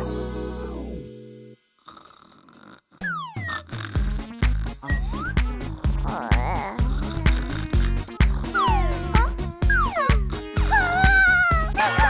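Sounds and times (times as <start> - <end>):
cartoon music with steady beat: 3.0 - 12.0
wavering whimpering cry: 5.0 - 12.0.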